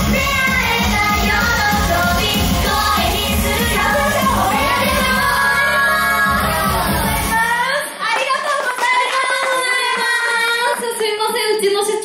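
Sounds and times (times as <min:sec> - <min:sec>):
women singing long notes: 0:00.0 - 0:07.9.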